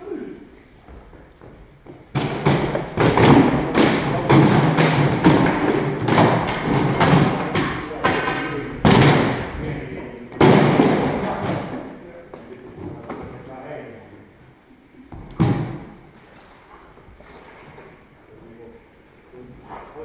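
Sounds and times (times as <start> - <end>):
weapons knocking on wooden shields: 1.9 - 9.6, 10.3 - 11.8.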